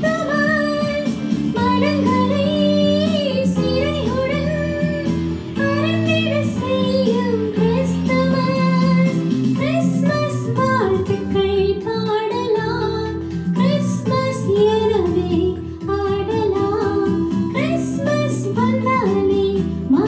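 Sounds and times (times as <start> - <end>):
instrumental accompaniment: 0.0 - 20.0
woman singing: 0.0 - 20.0.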